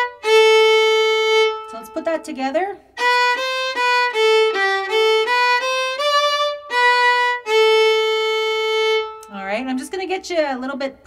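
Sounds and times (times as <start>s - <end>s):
solo fiddle playing: 0.0s - 9.6s.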